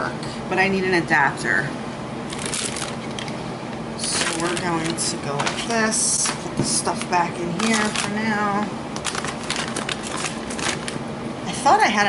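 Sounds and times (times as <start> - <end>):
items rattling in plastic basket: 2.3 - 3.3, 4.0 - 8.3, 9.0 - 11.0.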